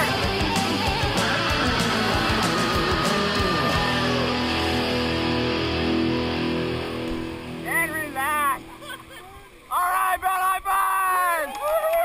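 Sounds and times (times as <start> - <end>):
rock music: 0.0 - 8.7
men shouting: 9.7 - 12.0.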